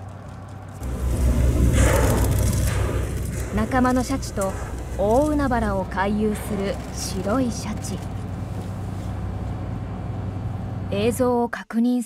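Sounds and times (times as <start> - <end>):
boat engine rumble: 0.0 - 11.5.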